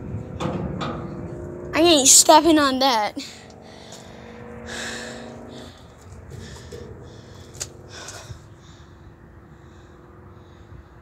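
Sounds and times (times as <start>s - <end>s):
heavy breathing: 3.2s - 11.0s.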